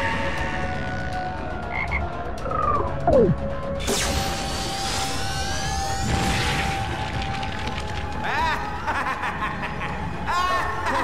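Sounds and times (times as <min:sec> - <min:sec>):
sustained music tones: 0:00.0 - 0:06.3
frog croaking: 0:01.7 - 0:03.4.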